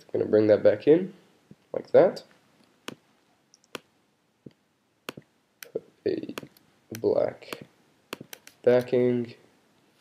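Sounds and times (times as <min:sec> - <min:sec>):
computer mouse clicks: 0:02.9 - 0:03.9, 0:04.5 - 0:09.0.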